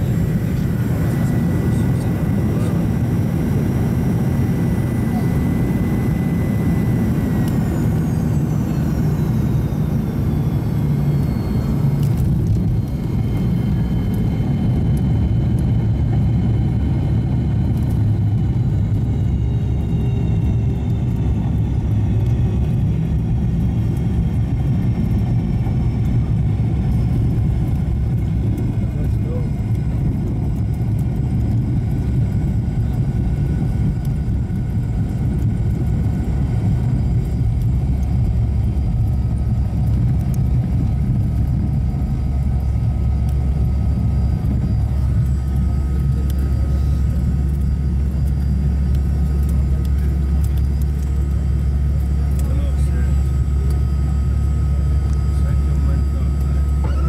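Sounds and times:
faint steady whine: 0.0 - 57.0
jet engine low rumble: 0.0 - 57.0.

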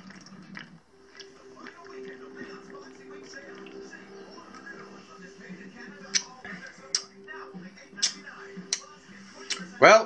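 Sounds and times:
lip smacks: 0.0 - 5.0, 6.0 - 7.2, 7.9 - 9.7
faint steady hum: 0.0 - 9.6.

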